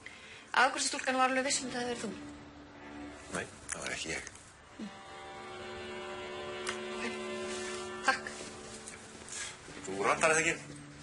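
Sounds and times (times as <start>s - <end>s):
hum of held tones: 4.6s - 11.0s.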